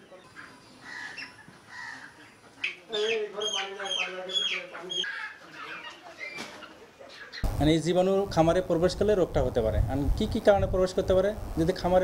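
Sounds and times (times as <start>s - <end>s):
chickens clucking and calling: 0.0s - 7.5s.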